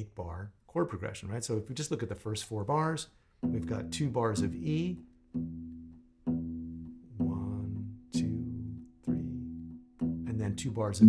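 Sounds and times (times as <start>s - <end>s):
plucked acoustic guitar bass notes: 3.4s - 11.0s.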